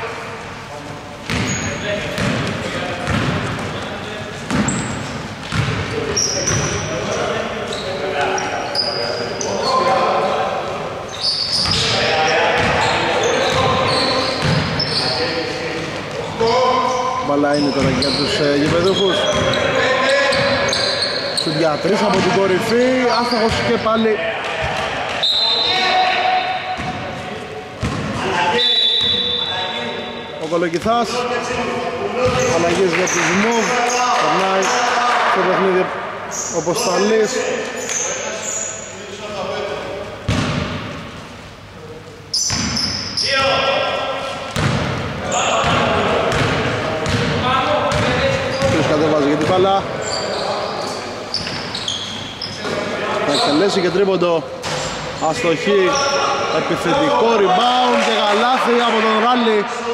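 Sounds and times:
players calling out: 1.0 - 30.3, 42.3 - 59.9
basketball bouncing on wooden court: 1.3 - 1.6, 2.2 - 3.9, 4.5 - 5.9, 12.6 - 14.8, 26.8 - 27.0, 27.8 - 28.2, 32.2 - 32.7, 40.3 - 40.8, 42.5 - 42.9, 44.5 - 45.0, 45.6 - 49.6
shoe squeaks: 1.3 - 2.0, 4.5 - 5.2, 6.0 - 10.1, 11.1 - 15.4, 16.1 - 22.2, 22.9 - 23.8, 25.2 - 26.9, 27.8 - 30.3, 36.3 - 37.2, 37.8 - 39.0, 42.3 - 43.6, 47.9 - 54.1, 55.8 - 56.6.

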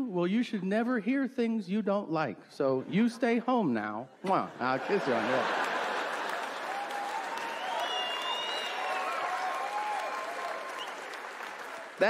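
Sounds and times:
voices cheering: 4.9 - 12.0
audience applauding: 5.0 - 12.0.

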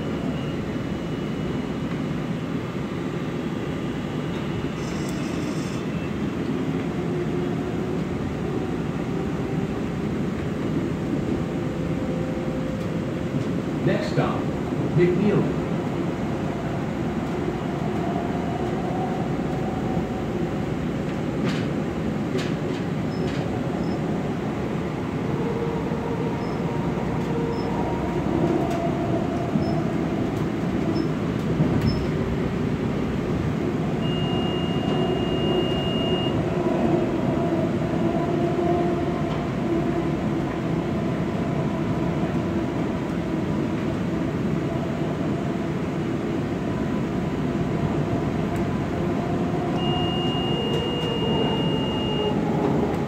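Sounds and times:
wheels rumbling on rails: 0.0 - 53.0.

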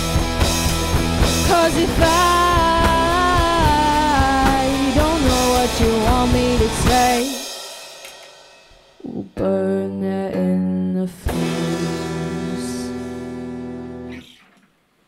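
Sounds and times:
ringing guitar and bass chords: 0.0 - 7.5, 9.0 - 14.5
rock band playing: 0.0 - 9.0, 11.2 - 14.4.

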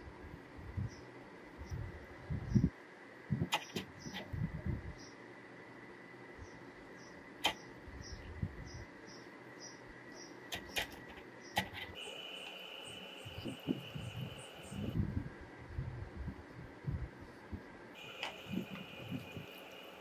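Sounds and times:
faint high whine: 0.0 - 20.0
sharp clicks: 3.5 - 4.3, 10.5 - 12.6
faint regular chirping: 6.4 - 15.0.

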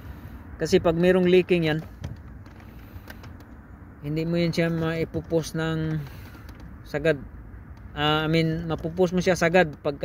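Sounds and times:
low background rumble: 0.0 - 10.0
brake pedal clicks: 1.0 - 10.0.

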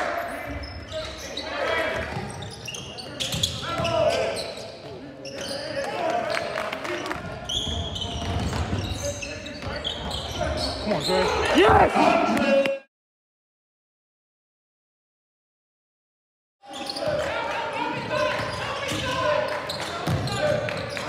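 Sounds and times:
sneakers squeaking: 0.2 - 6.4, 7.0 - 11.6, 16.7 - 17.3, 17.9 - 21.0.

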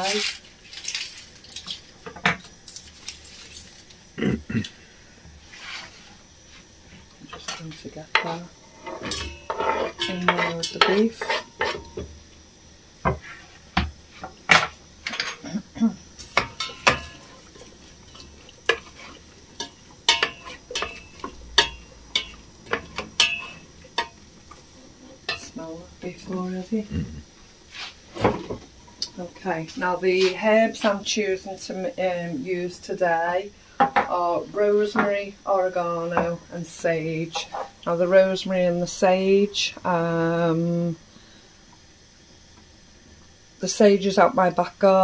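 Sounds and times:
onion scraped into metal pot: 5.4 - 6.6, 8.6 - 12.0, 27.7 - 28.3
metal pots knocking on hob: 16.2 - 17.4, 19.6 - 24.2.

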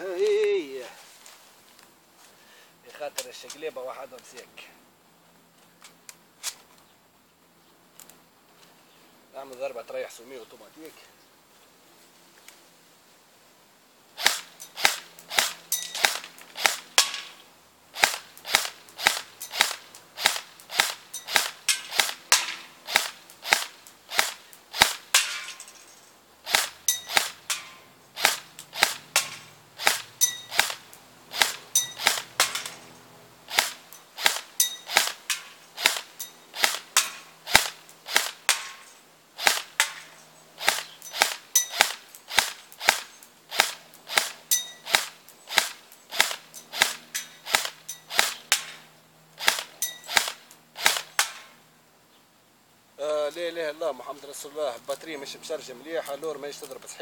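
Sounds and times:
man speaking: 0.0 - 1.0, 2.8 - 4.8, 53.0 - 57.0
airsoft rifle firing single shots: 14.2 - 17.4, 18.0 - 25.6, 26.5 - 32.9, 33.5 - 51.6.

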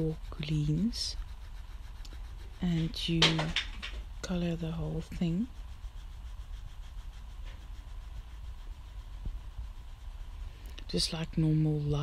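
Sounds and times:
pencil scratching on paper: 0.0 - 12.0
steady low rumble: 0.0 - 12.0.

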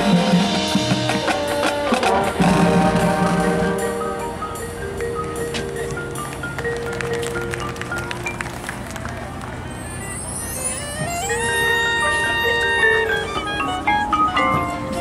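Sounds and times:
marching band playing: 0.0 - 15.0.

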